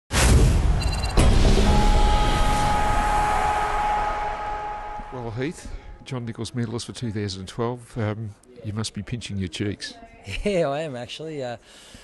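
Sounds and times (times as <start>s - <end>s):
low rumbling noise: 0.3s - 6.1s
steady high tones: 0.8s - 6.2s.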